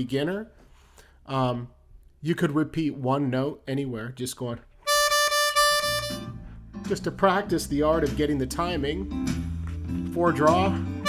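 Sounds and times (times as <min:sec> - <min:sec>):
harmonica note in tongued triplets: 0:04.8 - 0:06.5.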